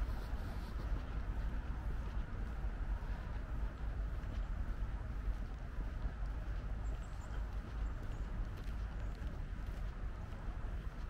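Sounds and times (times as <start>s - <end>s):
soft even hiss: 0.0s - 1.4s
low unsteady rumble: 0.0s - 11.0s.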